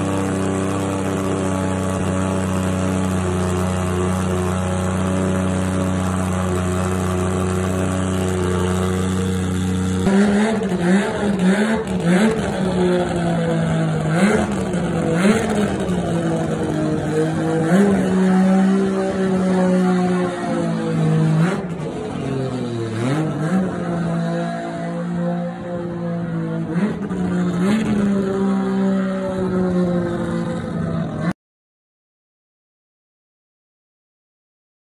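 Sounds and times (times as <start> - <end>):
car engine idling and revving: 0.0 - 31.4.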